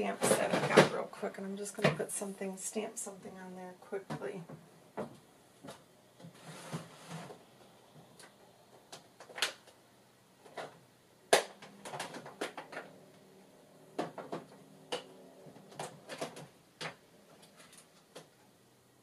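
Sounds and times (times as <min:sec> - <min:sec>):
clicks and knocks of objects: 0:10.4 - 0:13.0, 0:13.9 - 0:18.4.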